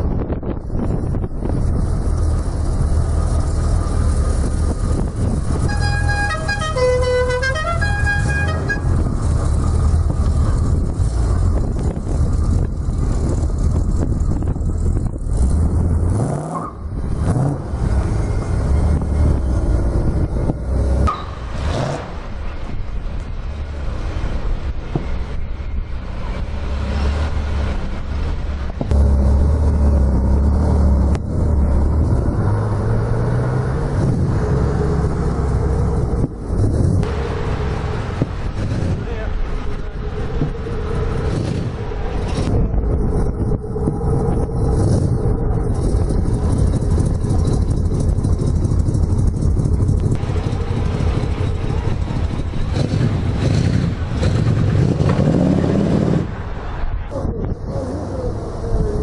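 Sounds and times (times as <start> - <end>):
sports car engines revving: 0.0 - 59.0.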